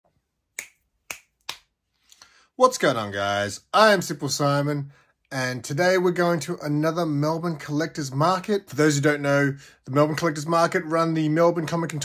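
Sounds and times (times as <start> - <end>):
finger snaps: 0.5 - 2.3.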